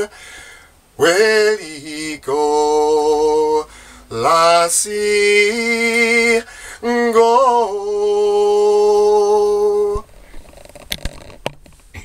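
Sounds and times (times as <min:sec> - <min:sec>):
man singing: 0:01.0 - 0:10.0.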